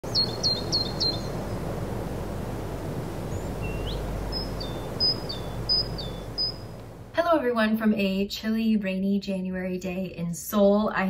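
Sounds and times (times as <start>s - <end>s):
small birds chirping: 0.0s - 7.1s
outdoor background hiss: 0.0s - 11.0s
rising whistled bird note: 0.1s - 1.4s, 3.3s - 6.8s.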